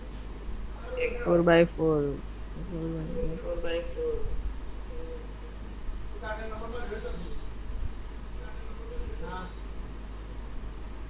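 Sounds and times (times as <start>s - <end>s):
steady low background hum: 0.0s - 11.0s.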